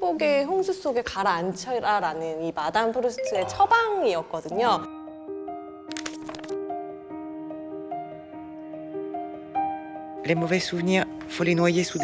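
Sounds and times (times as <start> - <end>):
soft film score: 2.6 - 12.0
paper packet tearing: 5.9 - 6.6.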